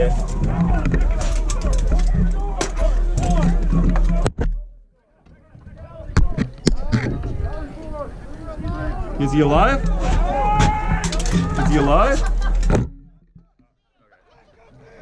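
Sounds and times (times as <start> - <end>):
people shouting: 0.0 - 4.2, 7.6 - 12.6.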